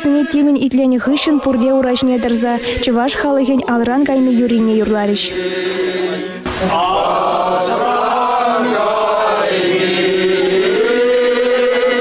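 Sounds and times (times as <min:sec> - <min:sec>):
group singing in unison: 0:00.0 - 0:04.4, 0:05.1 - 0:12.0.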